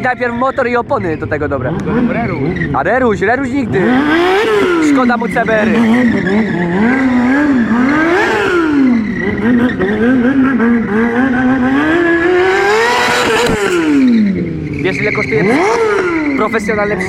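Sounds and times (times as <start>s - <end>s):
motorcycle engine revving: 0.0s - 17.0s.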